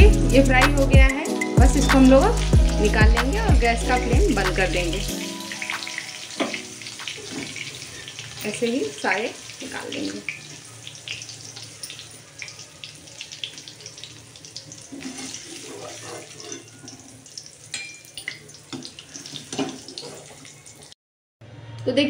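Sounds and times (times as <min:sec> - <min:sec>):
hot oil sizzling and crackling: 0:00.0 - 0:21.0
utensils clicking and scraping pan: 0:05.7 - 0:09.0, 0:14.8 - 0:20.6.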